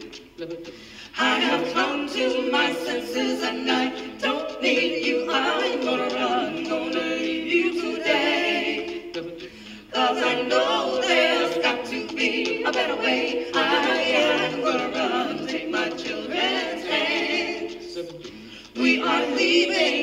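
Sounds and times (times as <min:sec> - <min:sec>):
female a cappella ensemble singing: 0:00.0 - 0:20.0.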